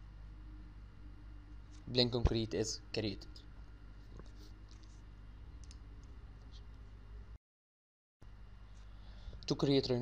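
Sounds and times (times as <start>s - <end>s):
low steady hum: 0.0s - 7.4s, 8.2s - 10.0s.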